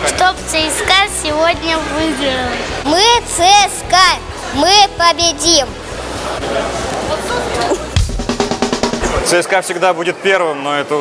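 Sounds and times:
bass drum hit: 0:07.9 - 0:09.3
fast snare drum roll: 0:08.0 - 0:09.4.

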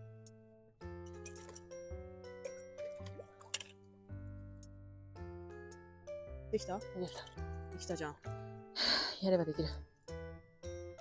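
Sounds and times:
light melodic background music: 0:00.0 - 0:11.0.

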